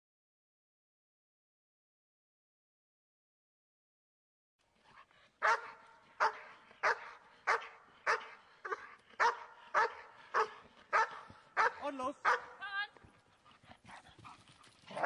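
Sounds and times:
dog barking: 5.4 - 12.6.

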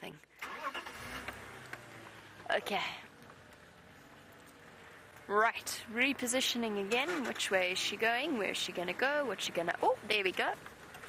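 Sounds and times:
vehicle engine starting and running: 0.2 - 11.0.

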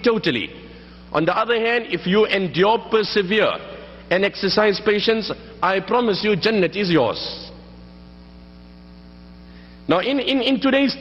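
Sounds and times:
man speaking: 0.0 - 7.6, 9.9 - 11.0
electrical hum: 0.0 - 11.0.

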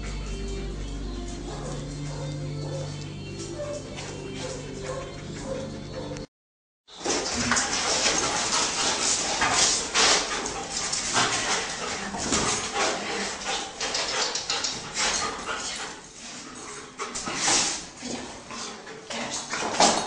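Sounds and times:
dog barking and whining: 1.5 - 3.0, 3.6 - 6.3.

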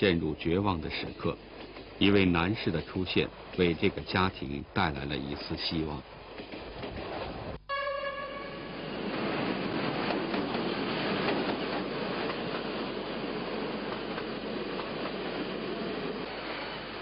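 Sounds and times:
train rumble: 0.0 - 7.6, 8.2 - 17.0
train rail noise: 0.0 - 17.0
train horn blast: 7.7 - 8.9.

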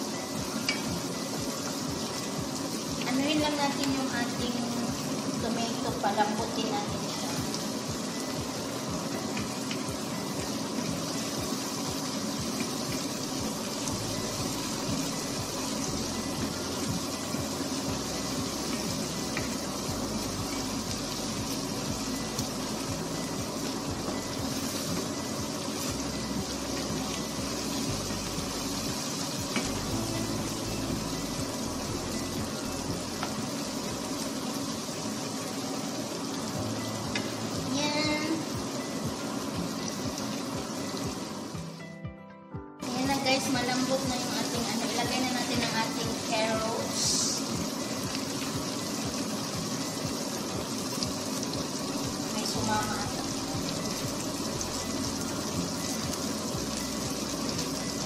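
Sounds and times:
vegetables sizzling in a frying pan: 0.0 - 41.9, 42.8 - 58.0.

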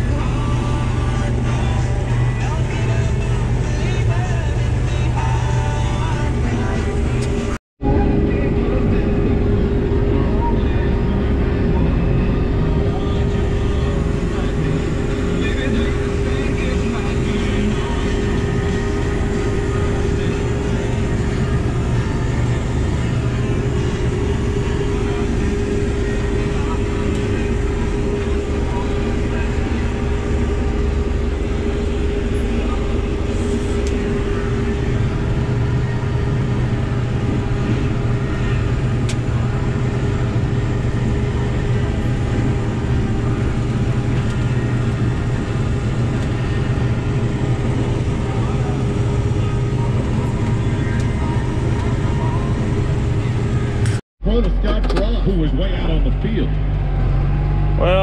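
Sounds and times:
combine engine and machinery drone: 0.0 - 58.0
steady hum: 0.0 - 58.0.

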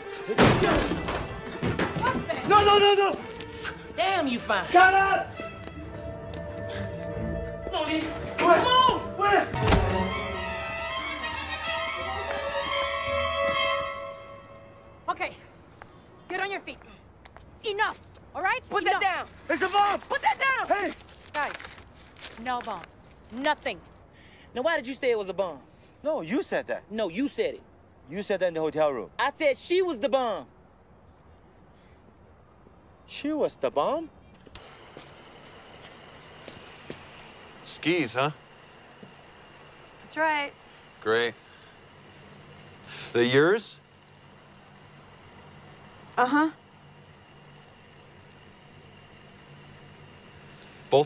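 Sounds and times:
quiet background hum: 0.0 - 51.0
orchestral string chords: 3.3 - 15.2.

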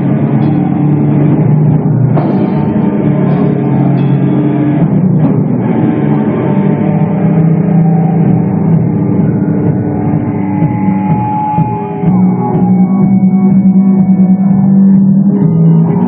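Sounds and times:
distorted guitars and bass: 0.0 - 16.0
drum kit: 0.0 - 16.0.

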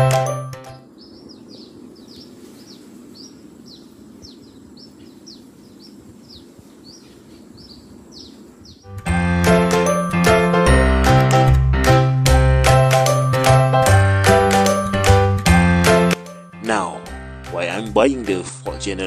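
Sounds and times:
background music: 0.0 - 0.9, 8.9 - 19.0
bird chirping: 0.7 - 9.0.

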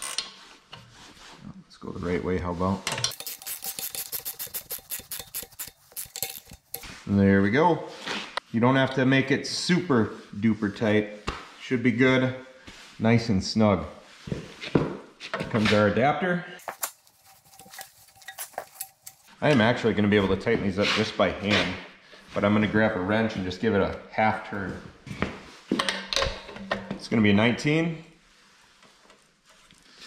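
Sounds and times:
wrench clicking: 3.1 - 6.8.

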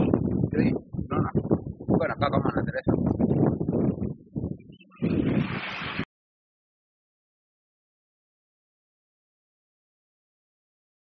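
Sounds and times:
wind buffeting microphone: 0.0 - 6.1.

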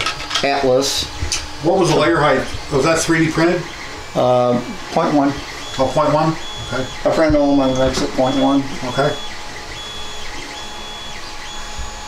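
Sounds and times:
printer motor whine: 0.0 - 12.0.

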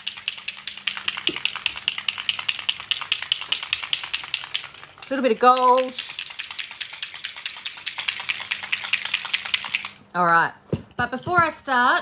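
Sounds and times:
ink bottle ball rattling: 0.0 - 10.0.

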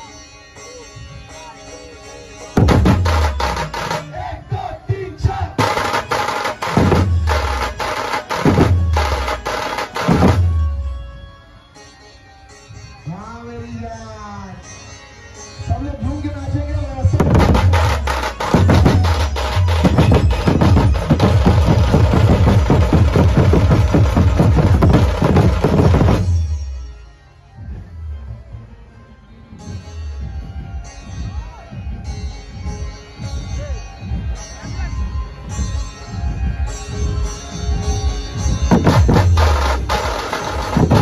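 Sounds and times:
dhol drums playing rhythm: 2.6 - 11.0, 17.0 - 27.0, 29.7 - 41.0.

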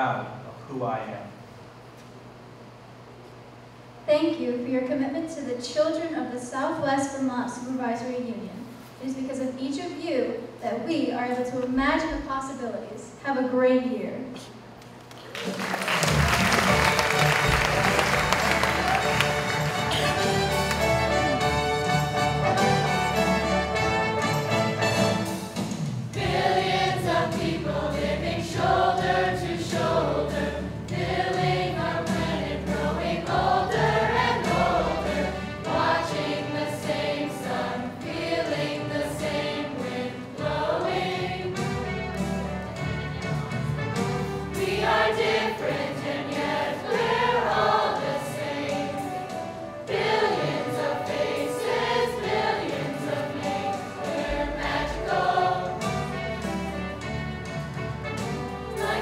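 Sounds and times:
instrumental accompaniment: 15.8 - 59.0
youth choir singing: 26.2 - 41.8, 44.5 - 49.3, 49.9 - 56.4, 58.7 - 59.0.

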